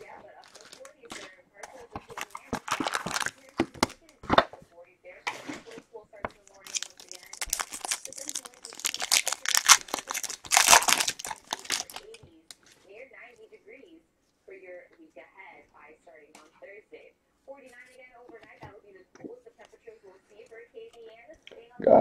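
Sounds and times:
plastic wrapper crinkling and tearing: 0.0 - 4.5, 6.4 - 12.8.

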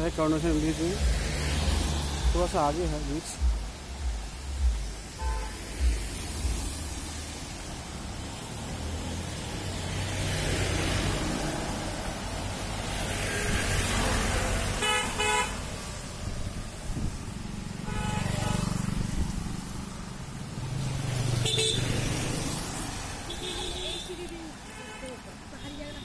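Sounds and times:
traffic engine rumble: 0.0 - 26.0
vehicle horns honking: 5.2 - 5.7, 14.7 - 15.7, 17.8 - 18.8, 21.4 - 22.0, 23.2 - 26.0.

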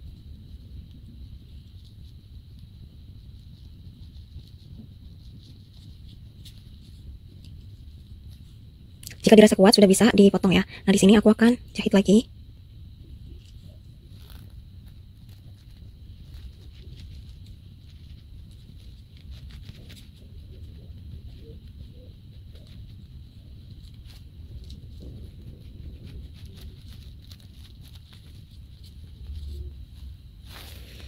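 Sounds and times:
low background hum: 0.0 - 31.0
yarn rustling: 13.3 - 31.0.

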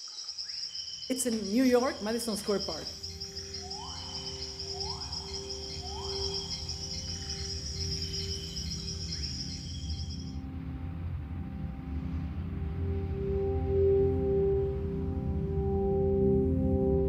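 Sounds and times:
high insect chirping: 0.0 - 10.4
rising calls: 0.0 - 10.4
soft music drone: 1.3 - 17.0.

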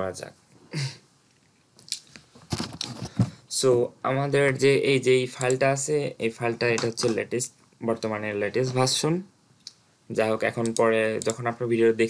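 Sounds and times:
person breathing: 3.0 - 3.5.

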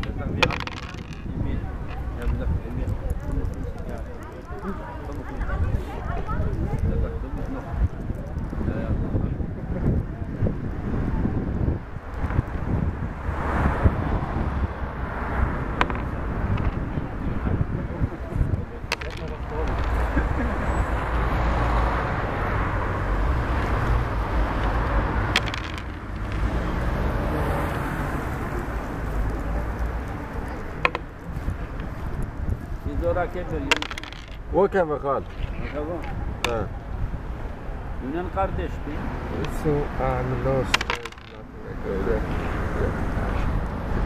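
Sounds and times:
wooden checkers clicking on board: 0.0 - 8.6, 12.1 - 12.7, 15.7 - 16.9, 18.8 - 20.4, 23.4 - 34.5, 36.0 - 36.7, 39.4 - 39.6, 40.5 - 41.5
indistinct voices: 0.0 - 43.3
low traffic rumble: 0.0 - 44.0.

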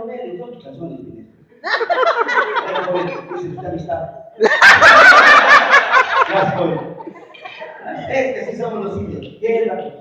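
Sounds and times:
loud burst of laughter: 4.4 - 7.4.

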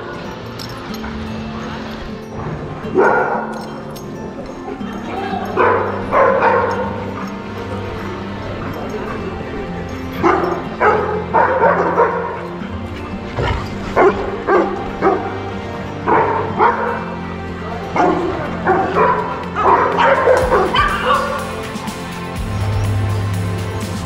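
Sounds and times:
background music: 0.0 - 24.0
dogs barking: 0.0 - 24.0.

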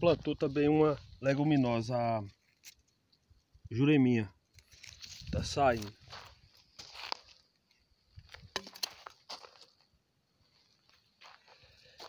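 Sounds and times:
footsteps crunching on dry soil: 0.0 - 2.4, 4.6 - 12.0.

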